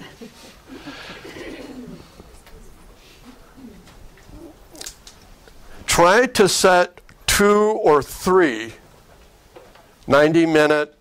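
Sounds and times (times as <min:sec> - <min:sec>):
quiet laughter: 0:00.0 - 0:04.8.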